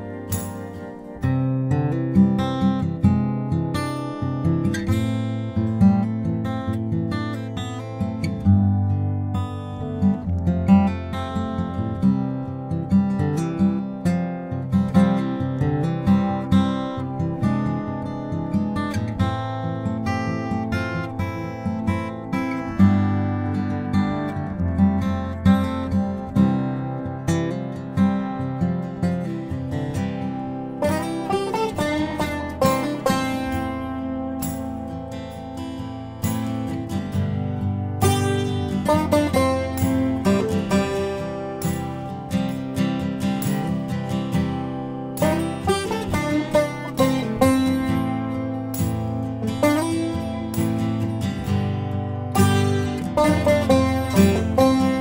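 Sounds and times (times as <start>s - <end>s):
acoustic guitar music: 0.0s - 55.0s.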